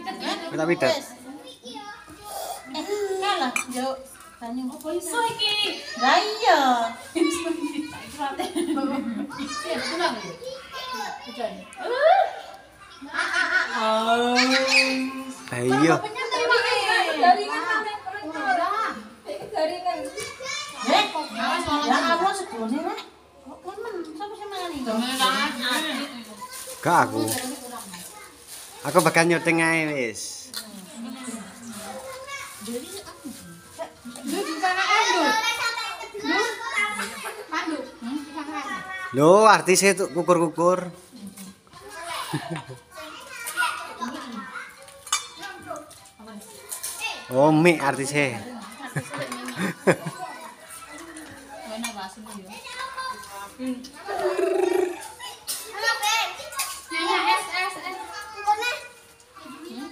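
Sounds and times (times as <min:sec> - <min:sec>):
children playing and talking: 0:00.0 - 0:59.9
nearby chatter: 0:00.0 - 0:59.9.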